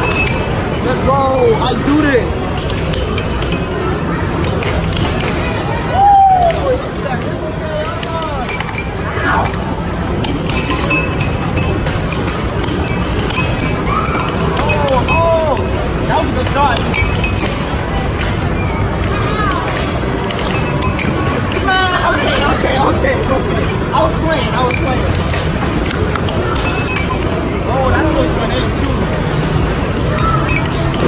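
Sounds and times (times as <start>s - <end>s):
crowd chatter: 0.0s - 31.0s.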